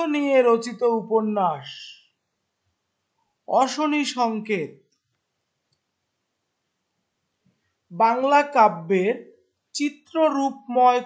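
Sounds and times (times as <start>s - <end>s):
person speaking: 0.0s - 2.0s, 3.5s - 4.7s, 7.9s - 9.2s, 9.8s - 11.0s.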